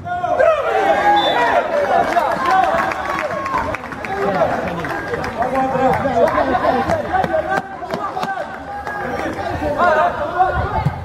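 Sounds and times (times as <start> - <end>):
overlapping chatter and shouts: 0.0 - 11.0.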